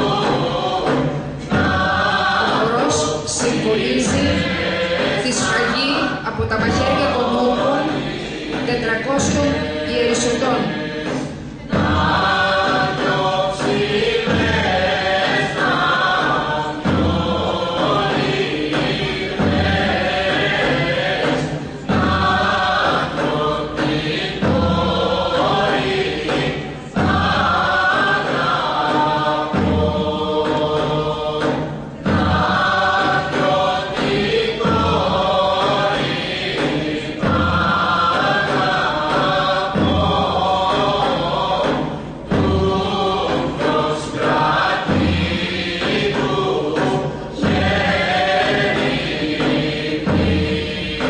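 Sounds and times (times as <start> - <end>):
group singing folk song: 0.0 - 51.0.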